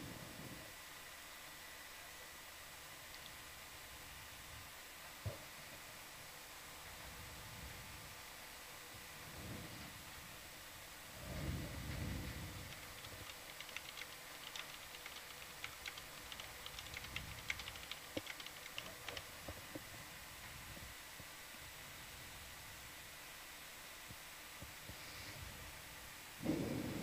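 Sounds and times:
steady hiss: 0.0s - 27.0s
keyboard typing: 12.6s - 19.5s.

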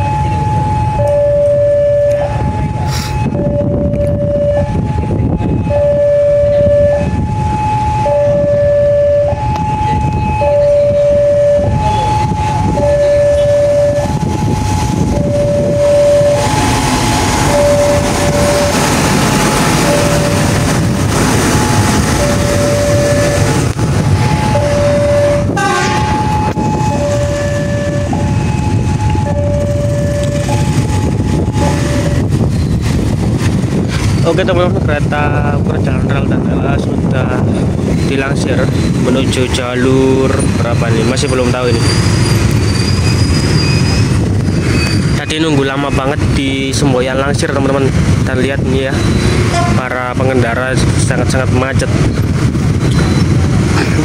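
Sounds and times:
rail vehicle rumbling past: 0.0s - 54.0s
level crossing alarm ding-dong: 5.6s - 19.0s, 19.8s - 20.6s, 21.6s - 23.6s, 24.2s - 32.2s.

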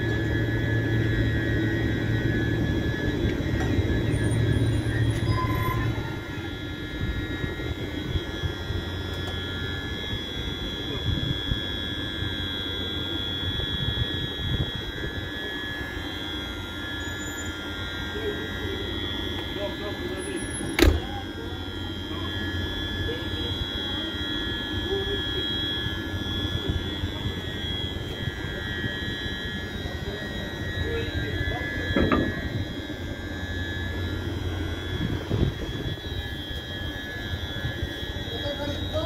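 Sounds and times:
electric locomotive whine and hum: 0.0s - 39.0s.

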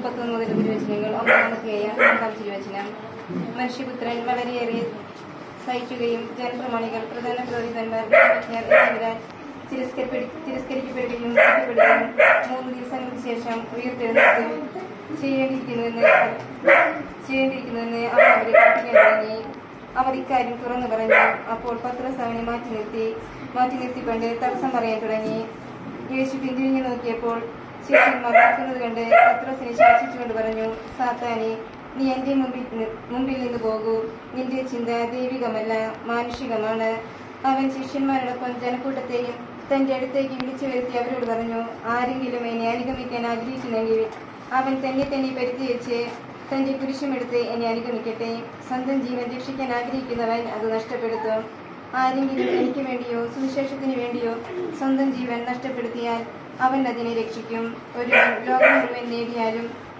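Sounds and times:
woman reciting prayer: 0.0s - 59.9s.

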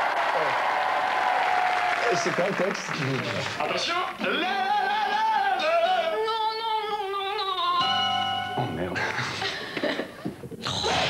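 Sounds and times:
studio audience applauding: 0.0s - 4.2s.

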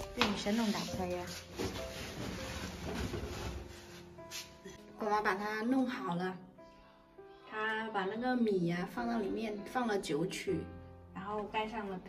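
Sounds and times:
rustling and handling noise: 0.0s - 4.8s.

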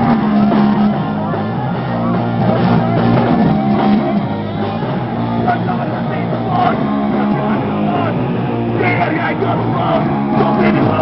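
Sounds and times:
distorted electric guitar: 0.0s - 11.0s
drum kit: 0.0s - 11.0s
singer shouting into microphone: 5.3s - 11.0s.

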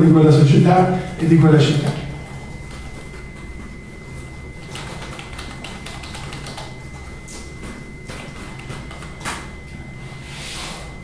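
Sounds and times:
quick irregular clicks and taps: 4.6s - 9.4s.

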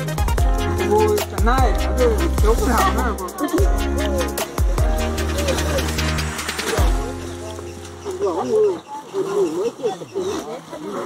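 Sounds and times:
background music: 0.0s - 8.9s.

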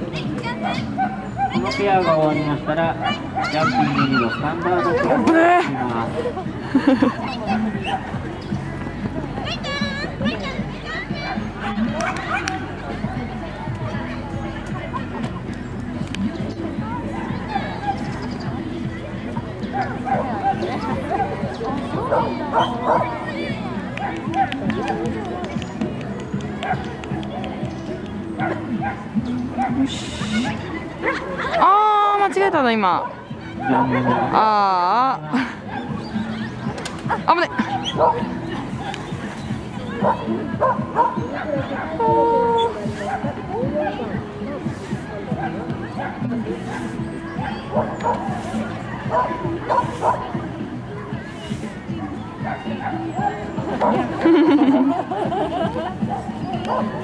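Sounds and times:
background music: 0.0s - 57.0s
crowd chatter: 0.0s - 57.0s
dog barking: 0.6s - 1.6s, 22.1s - 23.1s, 33.0s - 34.4s, 37.6s - 38.2s, 40.0s - 41.9s, 49.1s - 50.2s, 56.1s - 57.0s
small dog yipping: 0.6s - 1.9s
people laughing: 3.4s - 7.9s, 29.7s - 32.2s, 33.7s - 38.7s, 53.0s - 57.0s.

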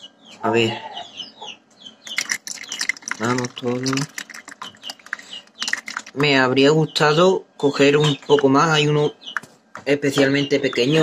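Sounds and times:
high bird chirps: 1.0s - 7.2s
water trickling into a tank: 2.1s - 6.5s.

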